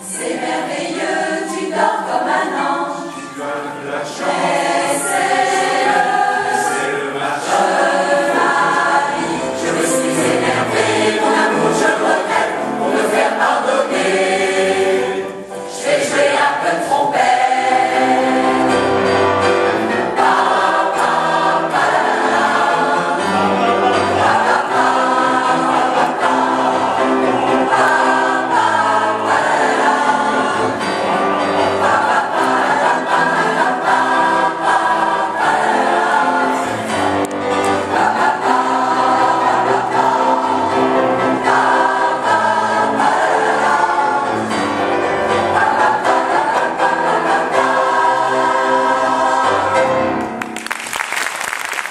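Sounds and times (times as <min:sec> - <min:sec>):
choir singing a lullaby: 0:00.0 - 0:50.2.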